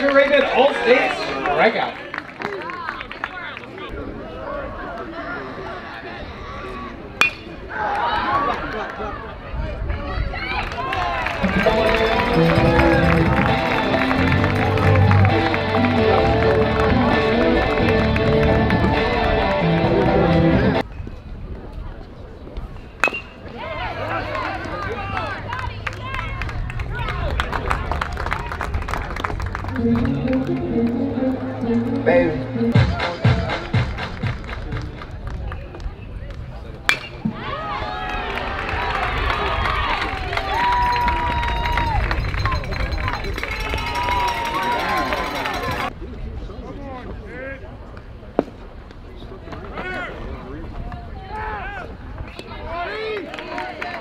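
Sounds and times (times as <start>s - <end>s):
crowd chatter: 0.0s - 54.0s
people shouting and cheering: 2.4s - 20.8s, 23.4s - 28.8s, 37.2s - 45.9s, 50.8s - 54.0s
metal bat hitting ball: 7.2s - 7.6s, 23.0s - 23.4s, 36.9s - 37.3s.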